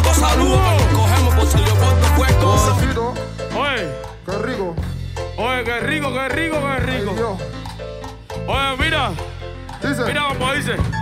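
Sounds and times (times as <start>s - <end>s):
man singing into a microphone: 0.0s - 3.2s
steady bass: 0.0s - 11.0s.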